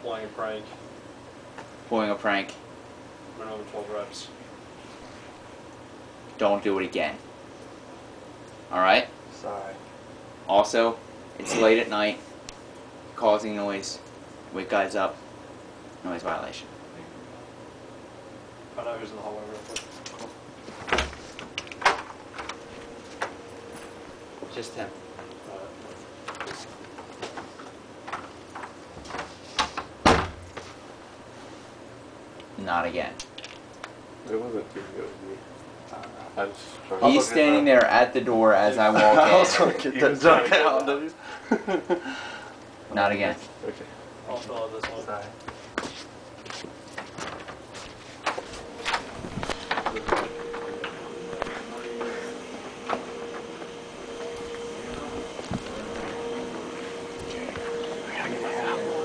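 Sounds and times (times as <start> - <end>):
steady hum: 0.0 - 59.0
thump: 30.0 - 30.5.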